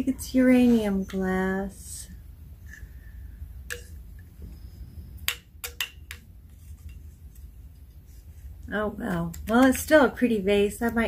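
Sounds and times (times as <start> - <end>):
steady low hum: 0.0 - 11.0
glassware handling noise: 3.7 - 4.0.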